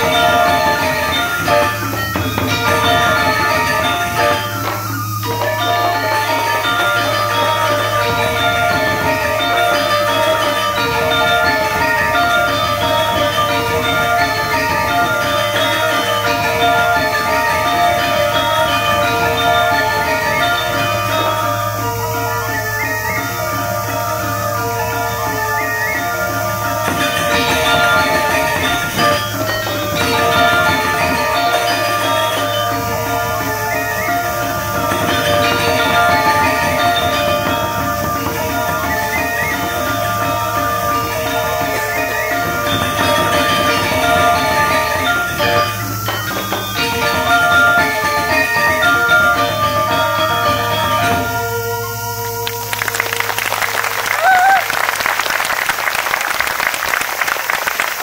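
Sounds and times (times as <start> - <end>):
gamelan metallophones playing: 0.0 - 58.0.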